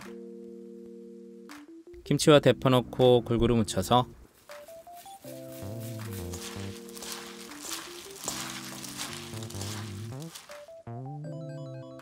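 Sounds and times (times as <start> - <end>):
held keyboard notes: 0.0 - 12.0
wet squishing of noodles mixing: 6.0 - 10.8.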